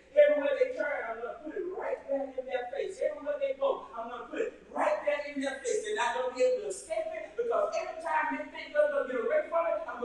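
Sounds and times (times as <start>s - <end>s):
man preaching: 0.0s - 10.0s.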